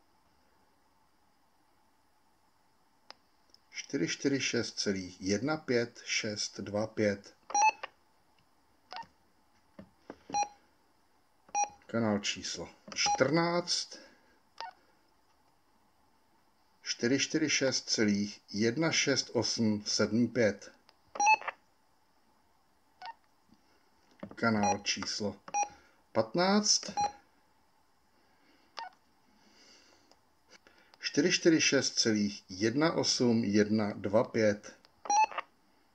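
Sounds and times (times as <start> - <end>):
faint hiss: 0.0 - 7.4, 8.1 - 21.1, 23.4 - 35.0
radio key beeps: 7.5 - 7.9, 10.3 - 10.5, 11.6 - 11.8, 21.2 - 21.5, 35.1 - 35.4.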